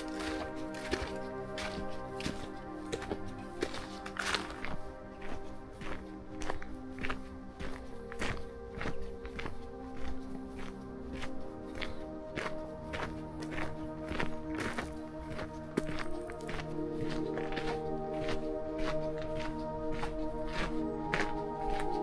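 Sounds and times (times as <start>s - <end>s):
background music with held notes: 0.0s - 22.0s
footsteps on gravel: 0.0s - 22.0s.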